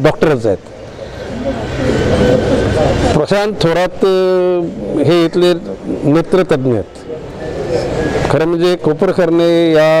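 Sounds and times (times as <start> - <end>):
faint voices: 0.3 - 10.0
vehicle passing: 0.6 - 9.8.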